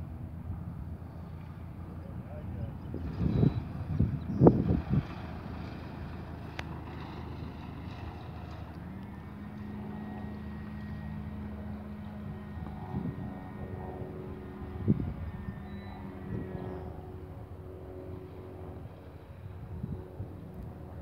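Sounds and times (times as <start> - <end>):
light aircraft engine droning: 0.0 - 21.0
wind buffeting microphone: 0.1 - 21.0.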